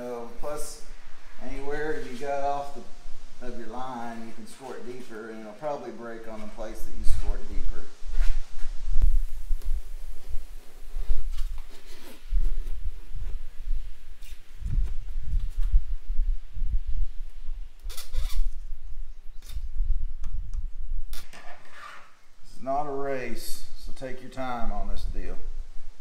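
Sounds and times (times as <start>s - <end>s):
cutter scraping plexiglass: 21.2s - 22.2s.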